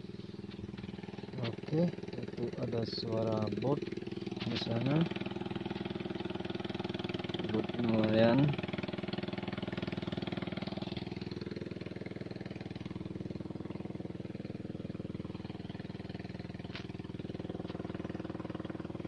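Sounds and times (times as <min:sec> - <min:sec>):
boat engine running: 0:00.0 - 0:19.0.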